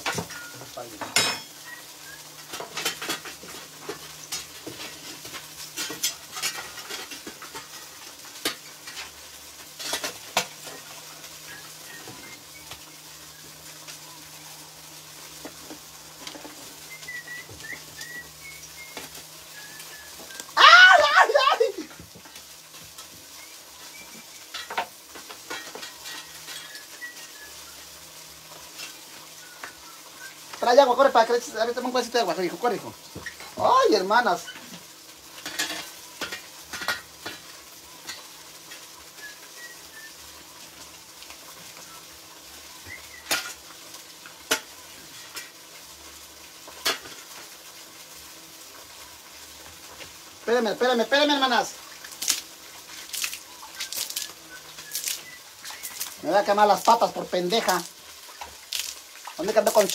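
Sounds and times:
food sizzling in a pot: 0.0 - 59.9.

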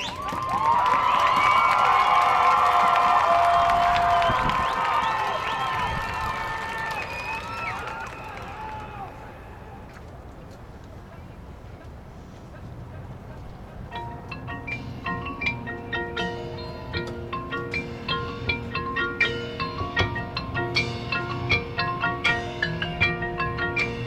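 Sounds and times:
held lower chords: 13.9 - 24.0
mallet percussion quick ringing notes: 13.9 - 24.0.

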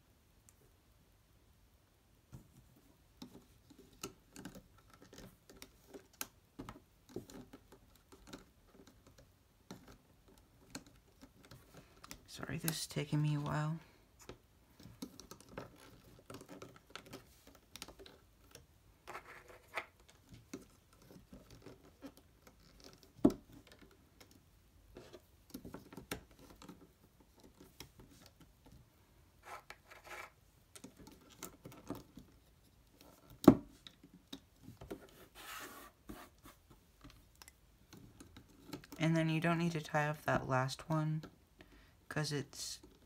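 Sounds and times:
loom hook scratching and clicking: 7.1 - 13.6, 14.8 - 19.2.

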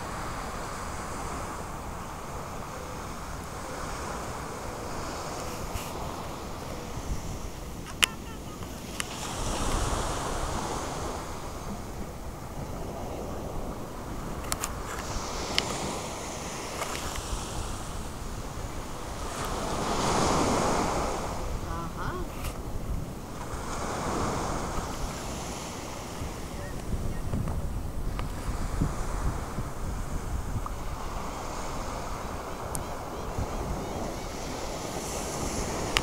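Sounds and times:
ocean surf washing ashore: 0.0 - 36.0
wind buffeting microphone: 0.0 - 36.0.

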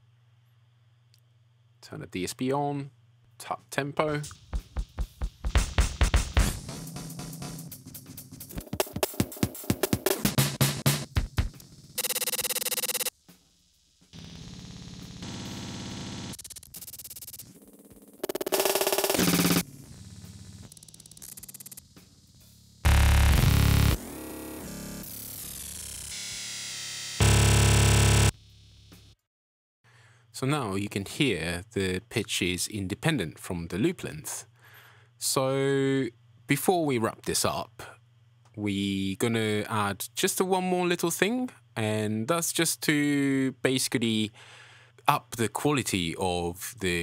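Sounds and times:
stuttering drum loop: 4.2 - 13.4, 14.1 - 17.5, 18.1 - 24.0, 27.2 - 28.4.

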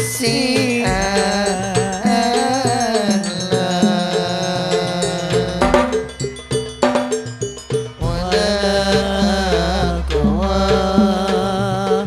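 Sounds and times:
frame drums: 0.0 - 12.0
keyboard melody: 1.6 - 8.0
sharp accented drum strikes: 5.4 - 8.6.

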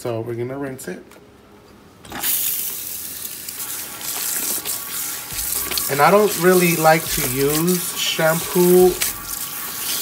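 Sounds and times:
water spraying into basin: 2.2 - 10.0.

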